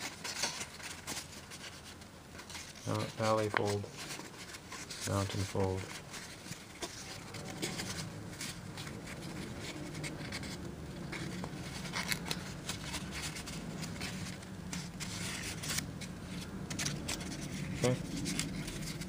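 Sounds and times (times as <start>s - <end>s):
low steady hum: 0.0s - 19.0s
paper rustling and crackling: 0.0s - 19.0s.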